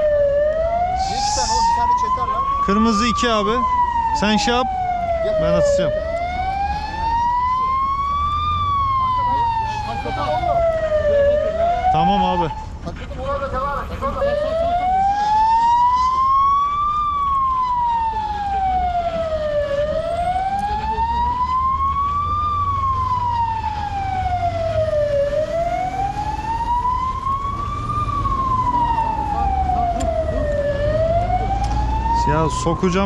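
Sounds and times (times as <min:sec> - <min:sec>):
siren wailing: 0:00.0 - 0:33.0.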